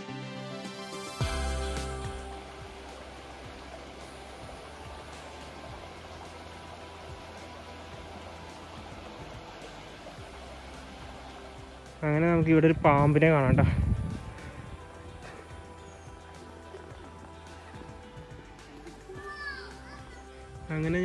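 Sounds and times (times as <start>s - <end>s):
background music: 0.0s - 21.0s
stream flowing over rocks: 0.8s - 21.0s.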